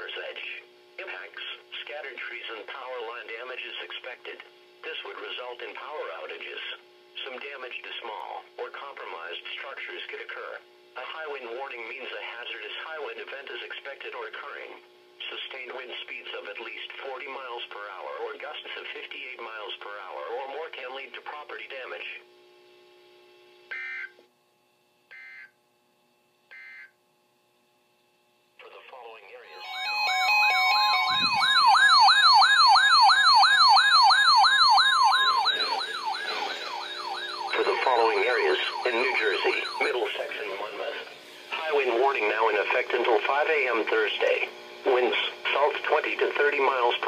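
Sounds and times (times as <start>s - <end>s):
broadcast voice speaking: 0.0s - 6.6s, 35.5s - 36.8s, 37.4s - 47.0s
steady warning alarm tone: 23.7s - 24.2s, 25.1s - 25.6s, 26.5s - 27.0s, 29.5s - 47.0s
warbling alarm sirens: 29.5s - 42.8s
digital data bursts: 29.5s - 43.1s.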